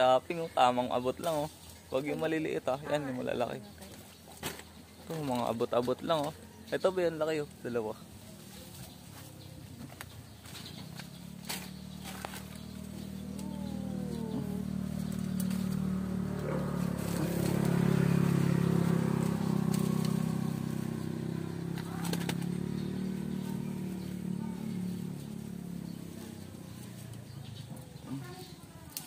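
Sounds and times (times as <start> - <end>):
vehicle engine passing by: 7.4 - 28.6.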